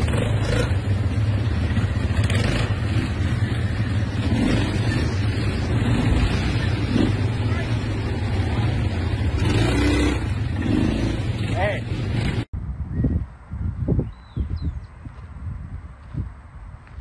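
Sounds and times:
wind buffeting microphone: 12.0s - 17.0s.

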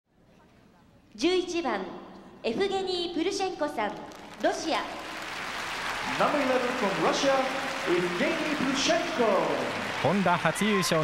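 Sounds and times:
crowd applause: 4.2s - 11.0s.

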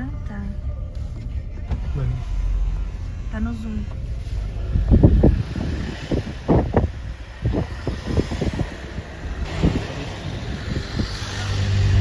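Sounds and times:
road and engine rumble: 0.0s - 12.0s
irregular low thuds: 3.6s - 11.0s.

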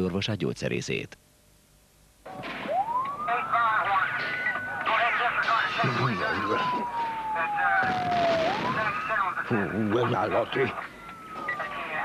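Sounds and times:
siren wailing: 2.3s - 12.0s.

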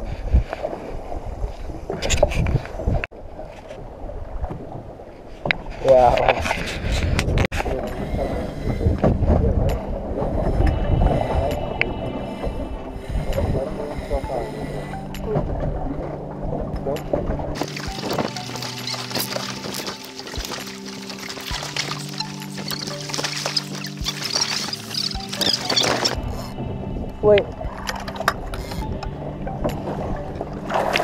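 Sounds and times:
water on a moving boat: 0.0s - 31.0s
wind: 0.0s - 31.0s
low rumble: 7.0s - 31.0s
music with long held notes: 7.6s - 31.0s.

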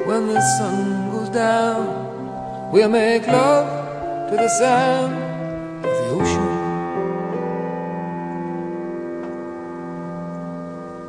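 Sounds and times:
sustained keyboard chord: 0.0s - 11.0s.

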